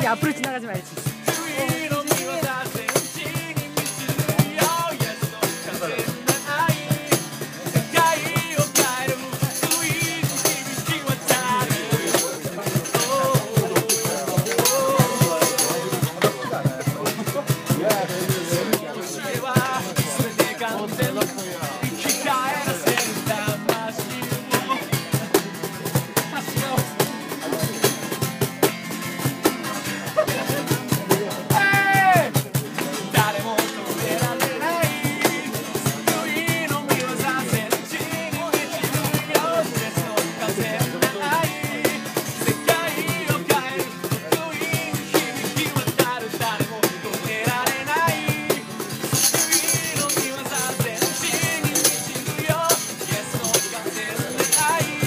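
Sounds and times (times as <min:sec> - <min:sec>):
man singing: 0:00.0 - 0:28.4, 0:29.6 - 0:55.0
acoustic guitar strumming: 0:00.0 - 0:55.0
cajon beat: 0:00.0 - 0:55.0.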